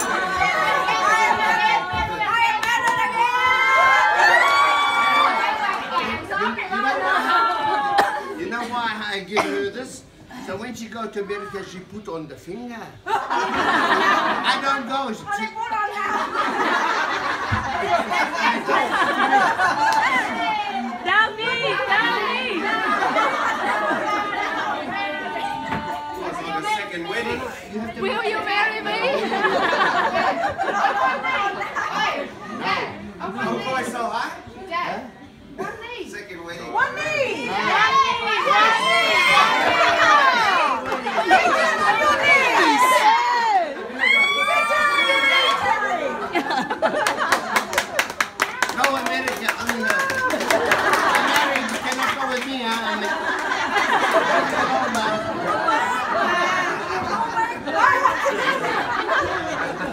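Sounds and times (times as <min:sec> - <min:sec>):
people clapping: 0:00.0 - 0:06.1, 0:16.6 - 0:20.4, 0:39.2 - 0:41.7, 0:46.4 - 0:55.8
overlapping conversation: 0:00.0 - 0:59.9
people talking and laughing: 0:00.0 - 0:59.9.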